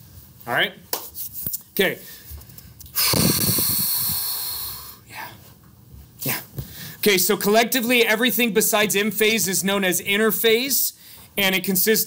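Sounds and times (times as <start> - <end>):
hissing rush of air: 3.0 - 5.0.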